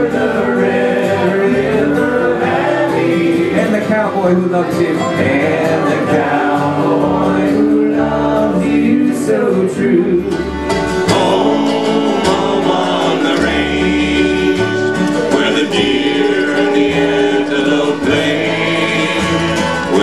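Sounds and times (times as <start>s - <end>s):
accordion: 0.0s - 20.0s
acoustic guitar: 0.0s - 20.0s
banjo: 0.0s - 20.0s
fiddle: 0.0s - 20.0s
upright bass: 0.0s - 20.0s
voices singing: 0.0s - 20.0s.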